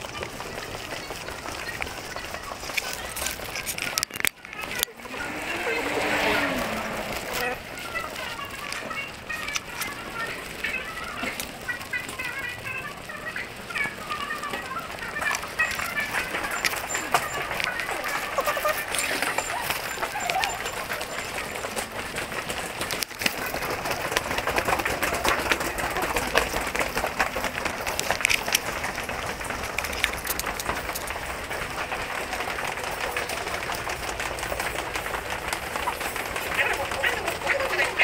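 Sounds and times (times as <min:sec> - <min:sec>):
footsteps of commuters: 0:00.0 - 0:38.0
murmur of voices: 0:00.0 - 0:38.0.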